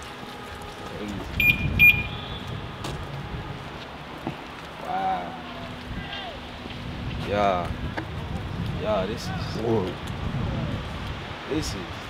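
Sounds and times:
outdoor background noise: 0:00.0 - 0:12.0
short high electronic beeps: 0:01.4 - 0:02.2.

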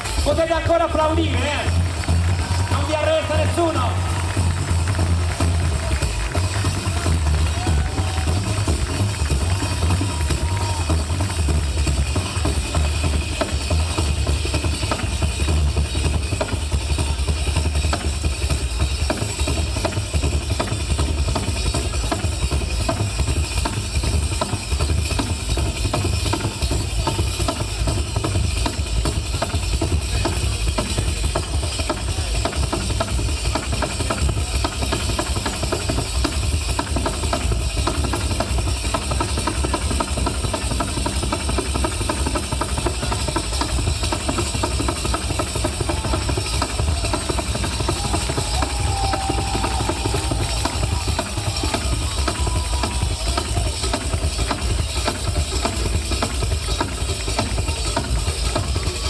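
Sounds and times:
frame drums beating fast rhythm: 0:00.0 - 0:59.0.

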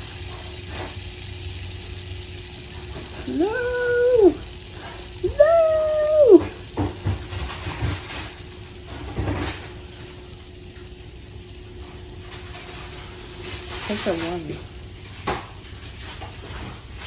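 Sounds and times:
plastic toys clicking and knocking: 0:00.0 - 0:17.0
spinners whirring: 0:00.0 - 0:17.0.

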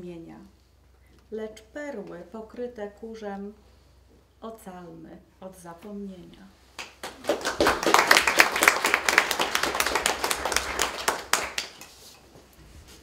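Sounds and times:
audience applause: 0:07.0 - 0:12.0.

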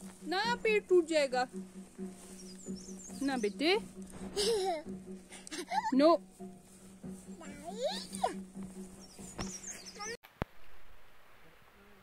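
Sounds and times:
outdoor background: 0:00.0 - 0:12.0.

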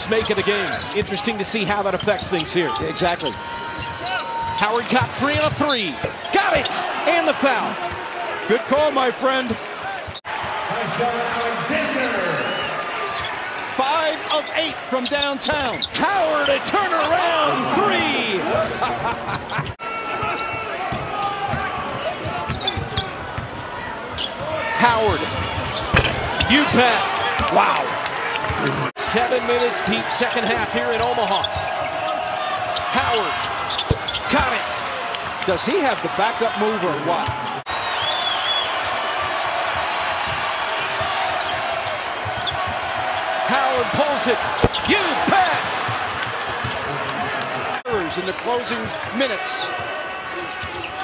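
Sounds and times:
crowd noise: 0:00.0 - 0:51.0.

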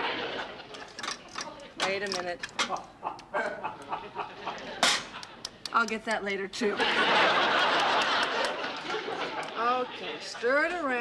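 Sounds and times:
woman speaking: 0:01.4 - 0:02.5, 0:05.7 - 0:06.9, 0:09.6 - 0:11.0
woman laughing: 0:02.7 - 0:04.6, 0:08.8 - 0:10.1.

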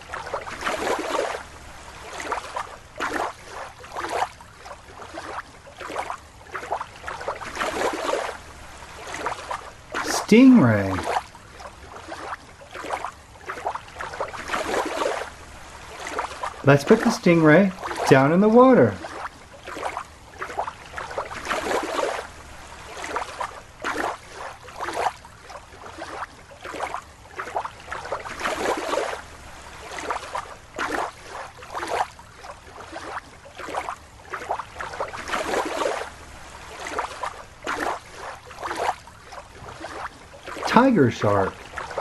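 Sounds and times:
water sloshing and swishing: 0:00.0 - 0:42.0.

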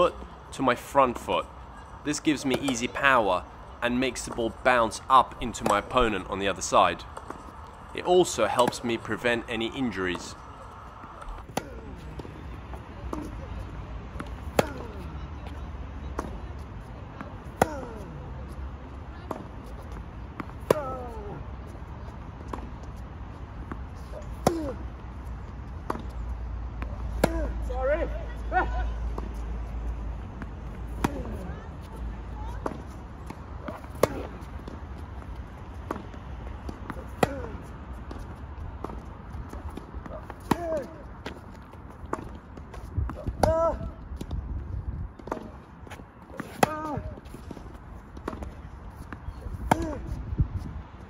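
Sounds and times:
racket hitting tennis ball: 0:01.1 - 0:03.2, 0:03.9 - 0:12.5, 0:14.1 - 0:15.1, 0:17.4 - 0:18.1, 0:19.3 - 0:21.2, 0:23.6 - 0:25.0, 0:26.8 - 0:27.8, 0:30.4 - 0:44.3, 0:45.2 - 0:50.2
distant tennis ball bounces: 0:14.1 - 0:16.4, 0:30.4 - 0:38.2, 0:38.8 - 0:44.3.

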